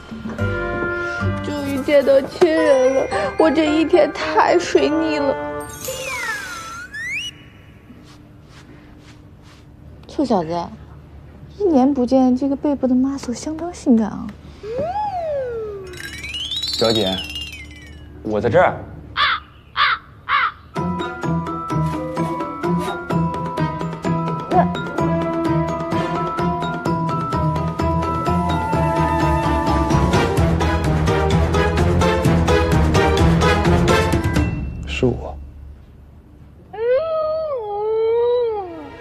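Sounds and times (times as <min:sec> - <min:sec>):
light mallet percussion music: 0:01.7 - 0:06.8, 0:15.7 - 0:18.6, 0:20.8 - 0:35.8
high-pitched wavering cry: 0:05.7 - 0:08.0, 0:14.6 - 0:18.2, 0:28.0 - 0:30.4
crow cawing: 0:19.2 - 0:20.7.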